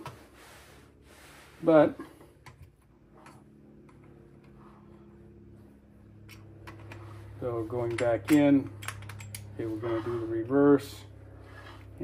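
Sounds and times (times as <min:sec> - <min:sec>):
faint steady hum: 0:00.0 - 0:12.0
revolver clicks and taps: 0:07.9 - 0:09.5.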